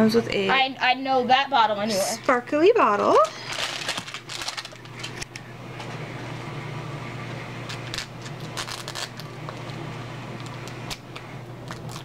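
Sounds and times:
steady low hum: 0.0 - 12.0
wrapping rustling and crinkling: 3.1 - 5.3, 7.7 - 9.7.

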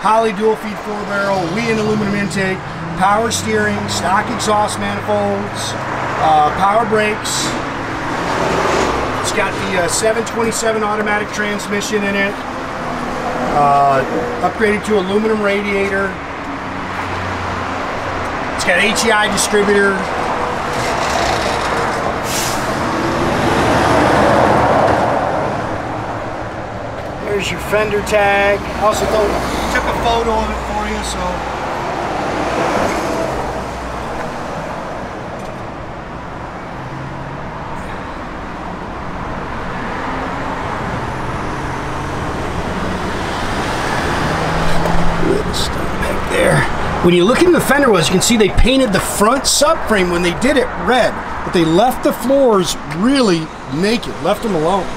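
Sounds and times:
road traffic rumble: 0.0 - 54.9.

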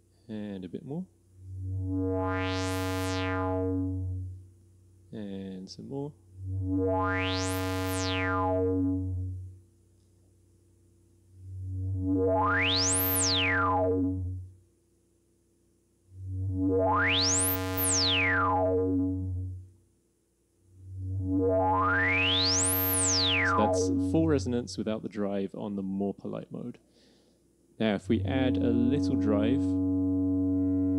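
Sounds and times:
low synthesizer notes with filter sweep: 1.5 - 4.3, 6.4 - 9.4, 11.5 - 14.5, 16.2 - 19.6, 20.8 - 24.6, 28.0 - 30.9.

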